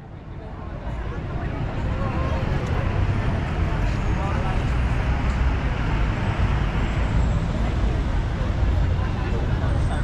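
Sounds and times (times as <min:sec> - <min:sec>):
indistinct crowd voices: 0:00.0 - 0:10.0
traffic rumble: 0:00.0 - 0:10.0.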